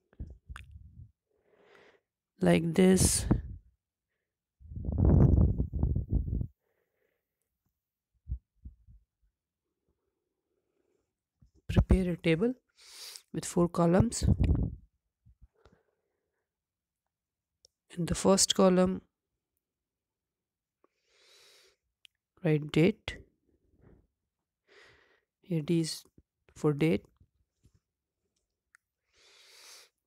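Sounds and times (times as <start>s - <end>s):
faint mouth click: 0.5s - 0.8s
soft low thumps: 4.6s - 6.5s, 14.0s - 14.8s
soft intake of breath: 12.8s - 13.3s, 29.1s - 30.0s.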